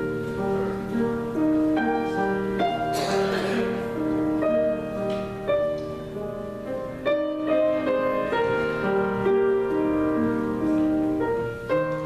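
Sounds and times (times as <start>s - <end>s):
piano playing held chords: 0.0s - 12.0s.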